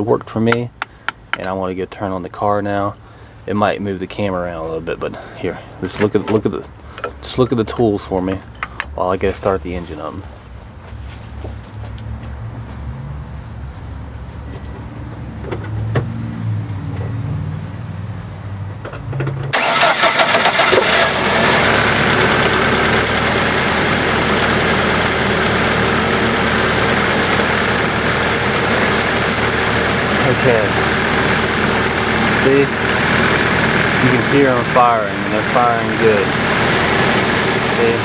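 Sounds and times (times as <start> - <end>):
car engine starting and idling: 19.0 - 38.0.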